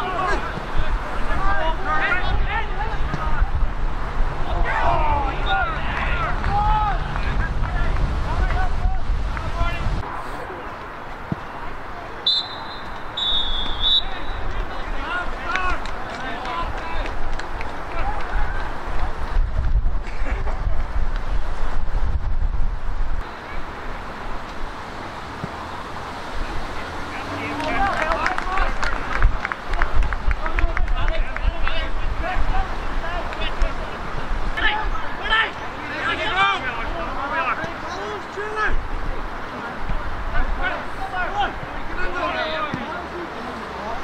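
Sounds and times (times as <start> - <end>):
men shouting: 0.0 - 3.4, 4.4 - 7.1, 34.6 - 38.7
wind rumbling on microphone: 0.0 - 11.7, 14.8 - 27.1, 28.6 - 35.2
referee whistle blasts: 12.2 - 14.5
sharp claps and knocks: 15.5 - 19.1.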